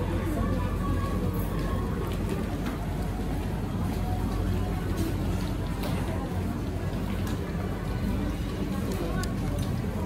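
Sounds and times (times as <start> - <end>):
rumbling store background noise: 0.0 - 10.0.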